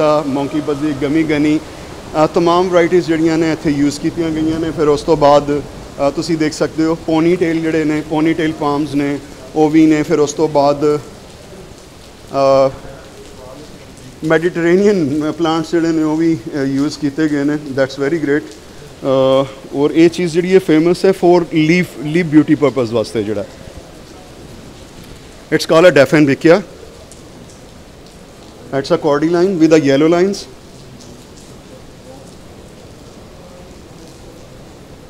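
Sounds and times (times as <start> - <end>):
man speaking: 0.0 - 11.1, 12.3 - 23.6, 25.5 - 26.7, 28.7 - 30.6
heavy rain hissing: 0.0 - 35.0.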